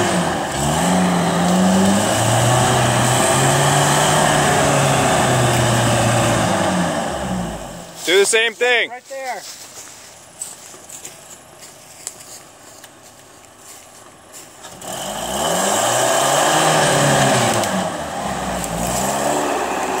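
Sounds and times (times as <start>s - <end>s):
truck engine revving: 0.0s - 8.3s, 13.1s - 20.0s.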